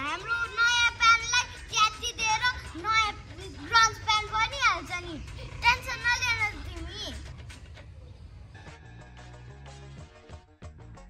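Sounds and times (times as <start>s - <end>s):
young children talking: 0.0s - 8.2s.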